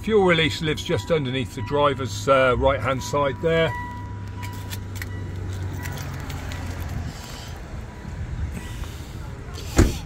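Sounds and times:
car door opening clicks: 9.6 - 10.0.

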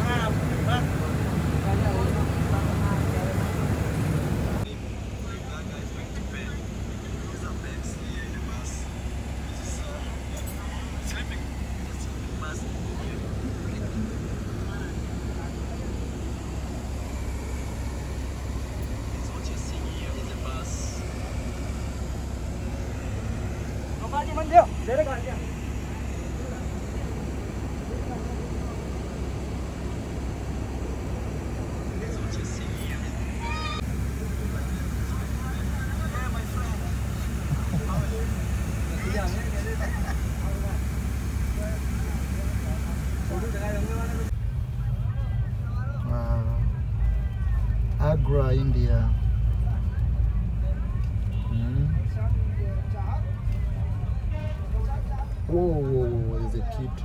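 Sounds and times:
bus engine rumble and road noise: 0.0 - 57.0
faint voices: 0.0 - 57.0.

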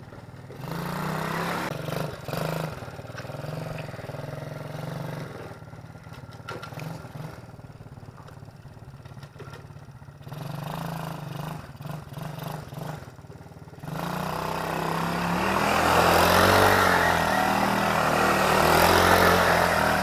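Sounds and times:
quad bike engine revving: 0.0 - 20.0.

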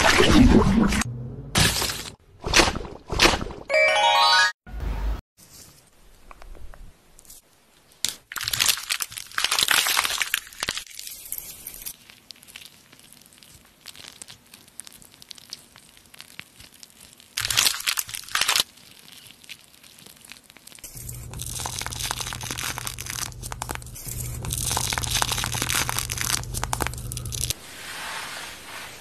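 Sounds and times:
face mask peeling crackle: 8.0 - 27.6
steady low hum: 20.9 - 27.6.

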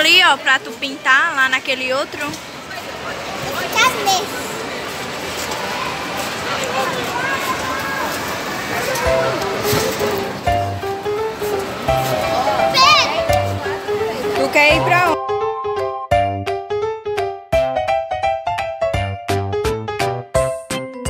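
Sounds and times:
children's voices and shouts: 3.4 - 4.6, 5.4 - 9.5, 12.3 - 13.9.

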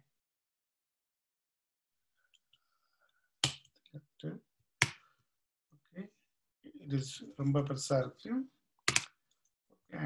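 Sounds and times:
computer keyboard keystrokes: 8.9 - 9.1.

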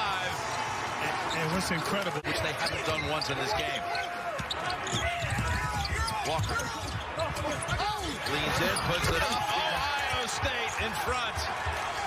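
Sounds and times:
sneakers squeaking: 2.4 - 9.5.

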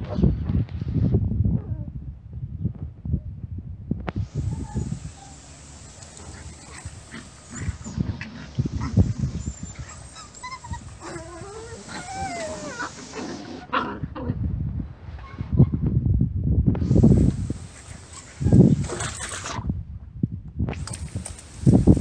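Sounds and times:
puppies yipping and whining: 4.4 - 5.6, 6.2 - 13.7.

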